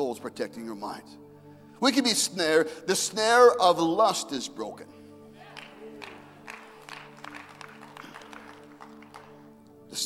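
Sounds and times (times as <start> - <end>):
faint claps: 5.5 - 9.5.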